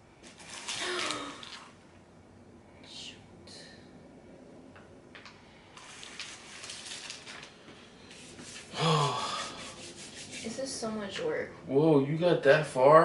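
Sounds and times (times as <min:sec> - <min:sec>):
handling and rustling noises: 0:05.8 - 0:08.7
short breathy vocal sound: 0:08.7 - 0:09.5.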